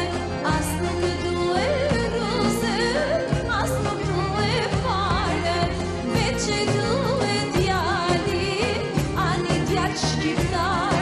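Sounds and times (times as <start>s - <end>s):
instrumental backing: 0.0s - 11.0s.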